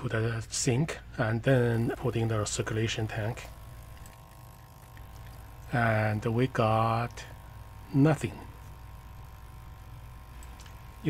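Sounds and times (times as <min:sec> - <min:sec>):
small pump humming: 0:00.0 - 0:11.0
thin whine: 0:00.0 - 0:11.0.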